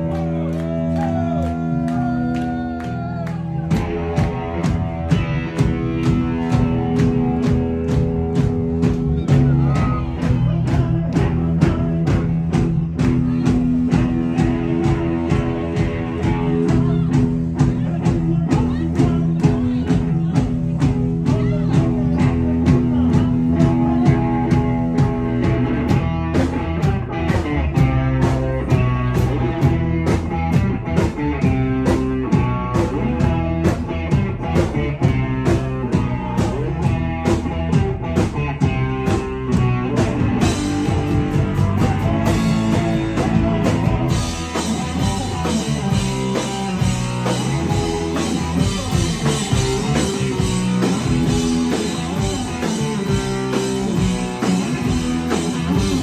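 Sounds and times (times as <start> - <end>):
bass guitar: 0.0 - 56.0
electric guitar: 0.0 - 56.0
drum kit beat: 0.1 - 56.0.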